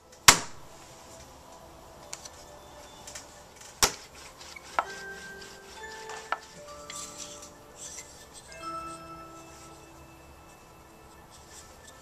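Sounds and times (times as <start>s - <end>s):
soft chime-like music: 0.7s - 12.0s
pottery tools tapping clay: 3.8s - 9.0s.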